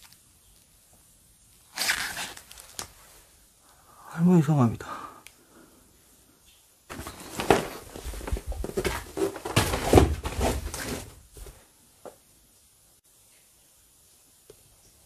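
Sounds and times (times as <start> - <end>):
faint click: 5.2 - 5.4.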